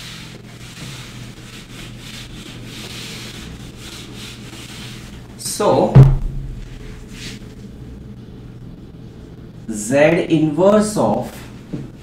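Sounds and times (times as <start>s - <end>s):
eraser scrubbing a whiteboard: 0.0s - 5.4s, 6.6s - 7.5s.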